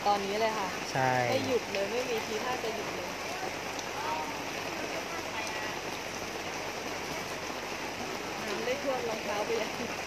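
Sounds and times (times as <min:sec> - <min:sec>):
rain on a tarp: 0:00.0 - 0:10.0.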